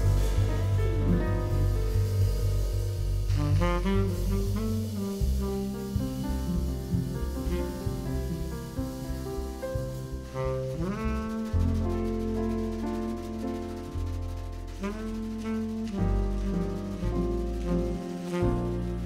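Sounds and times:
tenor saxophone melody: 0:00.0 - 0:08.5, 0:10.3 - 0:11.8, 0:14.8 - 0:19.0
drum kit: 0:00.0 - 0:19.0
walking double bass: 0:00.0 - 0:19.0.

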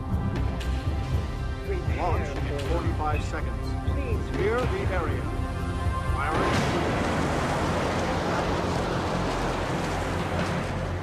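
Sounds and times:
music: 0:00.0 - 0:11.0
rocket rushing roar: 0:06.2 - 0:11.0.

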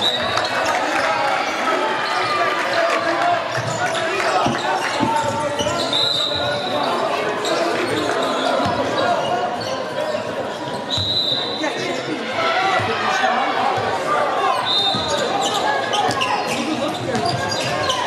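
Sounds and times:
babble of voices: 0:00.0 - 0:18.0
sneakers squeaking: 0:03.5 - 0:12.1, 0:14.4 - 0:18.0
basketball bouncing on wooden court: 0:16.8 - 0:17.8.

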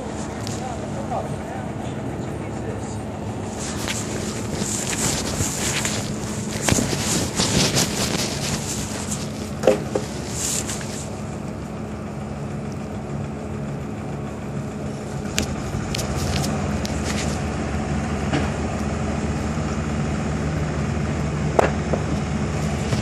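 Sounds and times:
truck engine running: 0:00.0 - 0:23.0.

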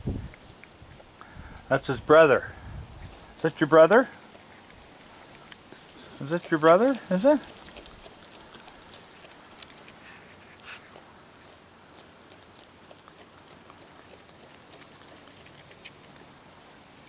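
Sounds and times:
raccoon chewing food: 0:00.1 - 0:17.0.

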